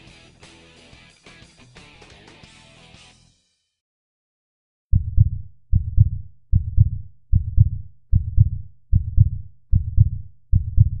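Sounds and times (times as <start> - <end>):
heartbeat thumps: 4.9 - 11.0.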